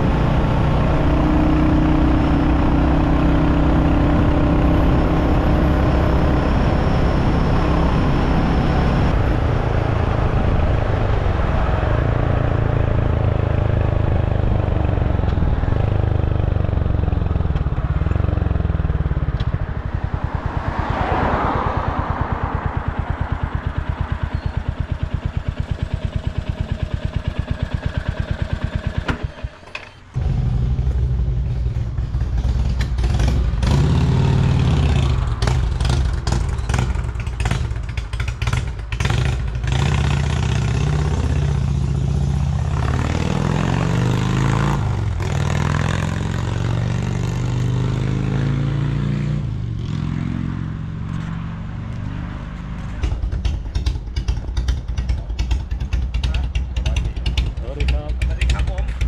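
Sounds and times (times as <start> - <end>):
motorcycle engines running: 0.0 - 59.0.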